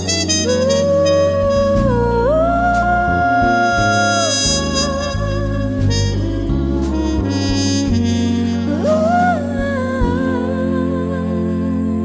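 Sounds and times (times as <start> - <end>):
lead melody line: 0.0 - 12.0
sustained low accompaniment: 0.0 - 12.0.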